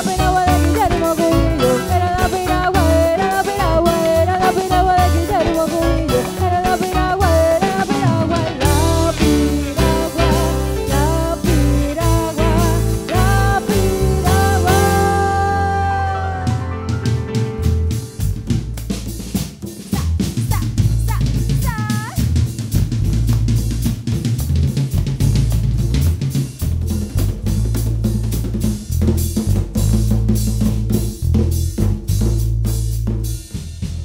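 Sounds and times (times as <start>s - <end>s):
live band playing rock: 0.0s - 32.2s.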